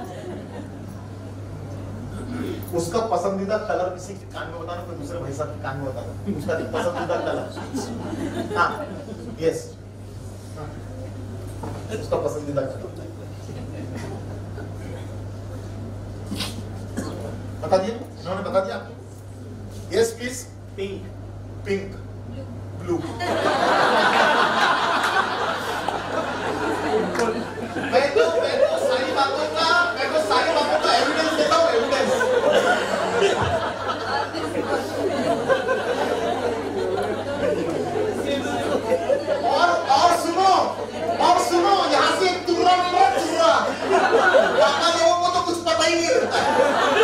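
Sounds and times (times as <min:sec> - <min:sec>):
murmur of overlapping voices: 0:00.0 - 0:47.0
steady low hum: 0:00.0 - 0:47.0.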